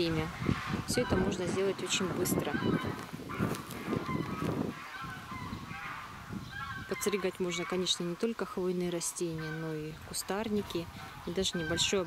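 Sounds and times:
fowl calling: 0.2s - 12.0s.

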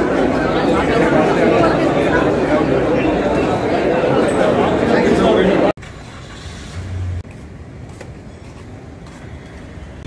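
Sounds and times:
rumble of passing vehicles: 5.8s - 10.0s.

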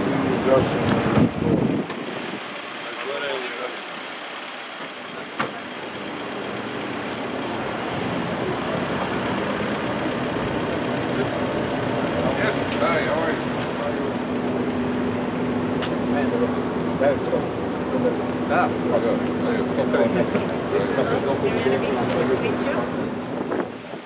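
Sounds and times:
car engines and tyres: 0.0s - 24.0s
people talking: 0.2s - 1.0s, 2.8s - 3.8s, 11.0s - 14.8s, 15.8s - 23.0s.

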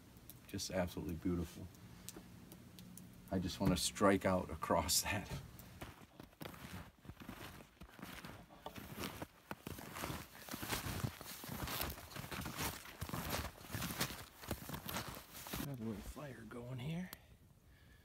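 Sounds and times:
snowshoes crunching through snow: 5.8s - 16.2s.

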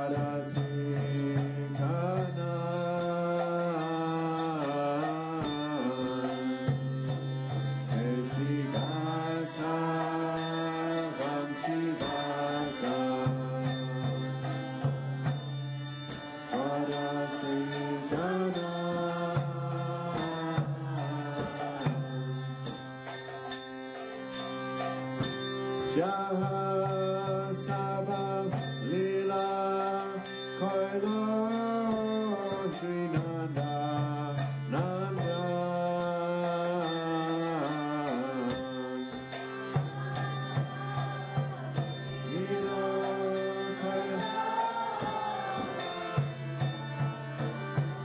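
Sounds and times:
person singing chanted melody: 0.0s - 48.0s.

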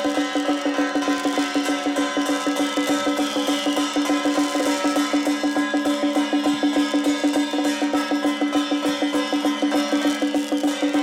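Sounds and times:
drums beaten in fast rhythm: 0.0s - 11.0s.

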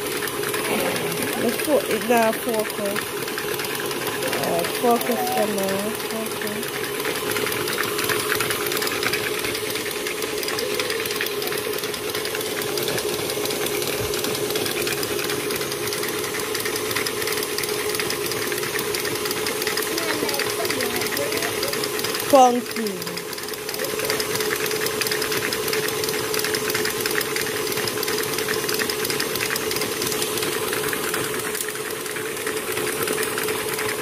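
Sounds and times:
stand mixer motor hum: 0.0s - 34.0s.

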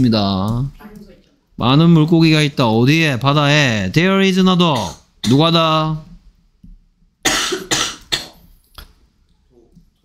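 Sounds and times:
person coughing: 7.2s - 8.5s.

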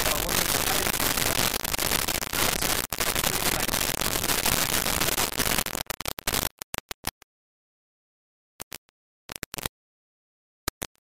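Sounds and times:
crackling static hiss: 0.0s - 6.9s.

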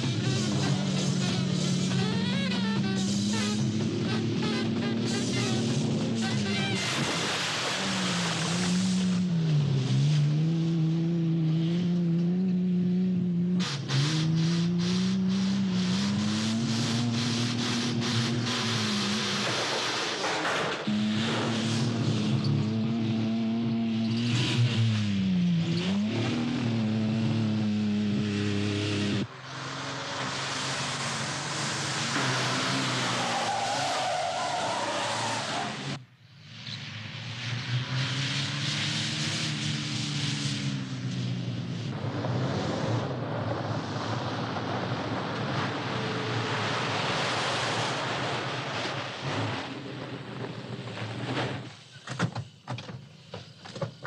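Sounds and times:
tyre squeal: 0.0s - 7.1s, 32.1s - 36.0s
tyres skidding on dirt: 0.0s - 12.4s, 13.5s - 36.0s, 37.4s - 54.0s
car engine revving hard: 13.1s - 20.0s, 20.9s - 36.0s.

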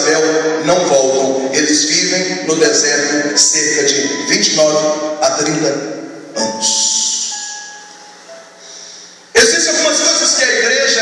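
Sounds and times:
amplified preacher voice: 0.0s - 7.4s, 9.3s - 11.0s.

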